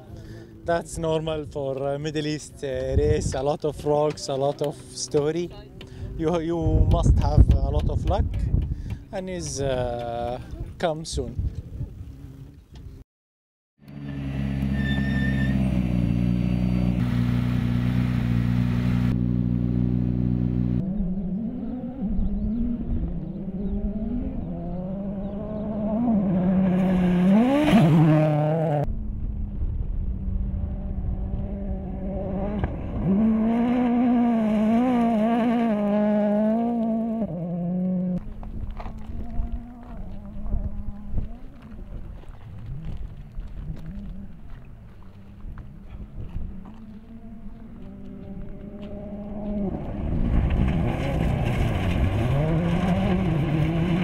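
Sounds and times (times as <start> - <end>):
rally car engine revving: 13.9 - 28.9, 30.1 - 41.8, 45.9 - 54.0.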